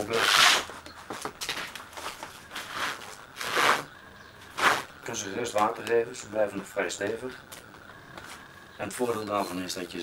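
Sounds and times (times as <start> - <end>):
paper rustling and scraping: 0.1 - 3.9.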